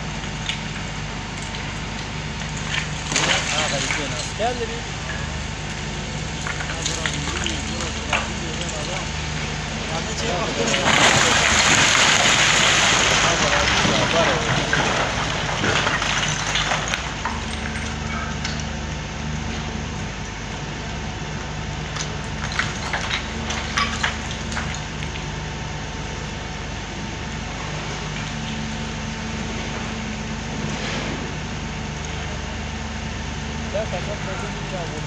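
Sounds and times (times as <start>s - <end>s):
diesel engine idling: 0.0s - 35.0s.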